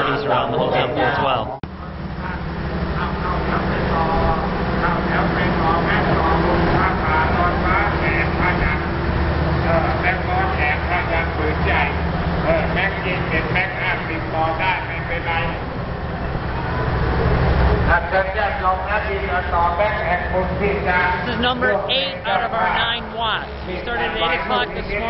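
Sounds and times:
people talking: 0.0 - 9.0, 9.6 - 15.7, 17.9 - 25.0
steady low rumble: 0.0 - 25.0.

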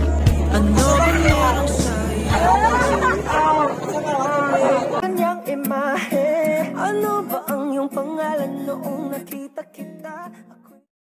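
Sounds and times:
song with singing and guitar: 0.0 - 10.9.

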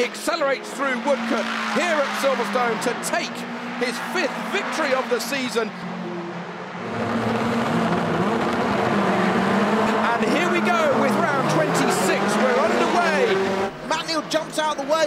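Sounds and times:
race car engines revving: 0.0 - 15.0.

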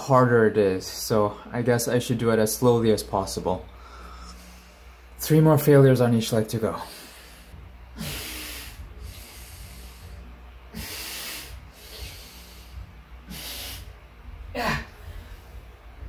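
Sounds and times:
man breathing hard: 3.7 - 5.2, 6.8 - 15.8
man groaning: 14.5 - 15.0.

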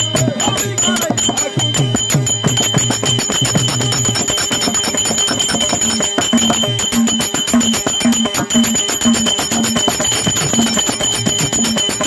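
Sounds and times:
small hand cymbals struck rapidly: 0.0 - 12.0.

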